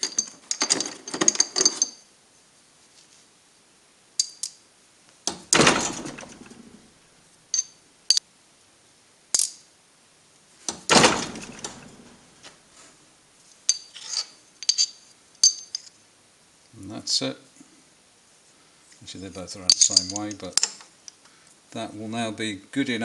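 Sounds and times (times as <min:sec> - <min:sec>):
steel pieces clinking: 0:00.0 - 0:02.1, 0:04.2 - 0:04.6, 0:07.5 - 0:08.2, 0:09.3 - 0:09.7, 0:13.6 - 0:16.0, 0:19.3 - 0:20.9.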